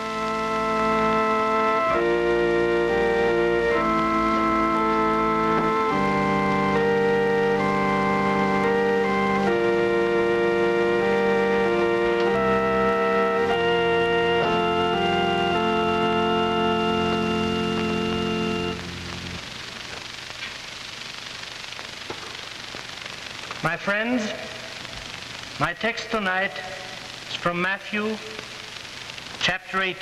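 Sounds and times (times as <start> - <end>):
organ playing slow chords: 0.0 - 19.7
steady hiss: 0.0 - 30.0.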